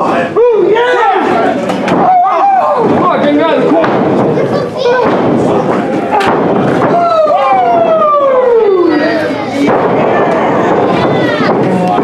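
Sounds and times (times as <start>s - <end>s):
crowd noise in a hall: 0.0s - 12.0s.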